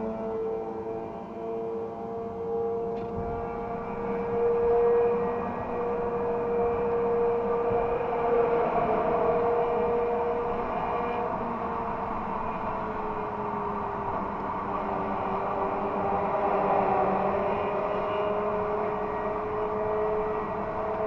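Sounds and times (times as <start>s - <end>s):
road and traffic noise: 0.0s - 21.0s.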